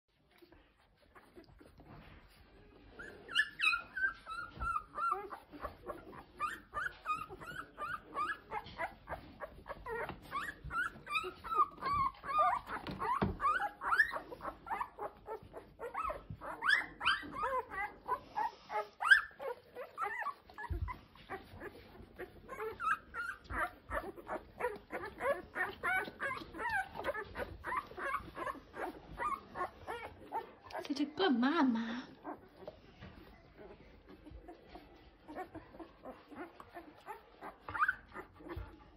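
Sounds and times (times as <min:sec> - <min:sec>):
puppies squeaking and whimpering: 0:00.2 - 0:31.1, 0:32.1 - 0:38.9.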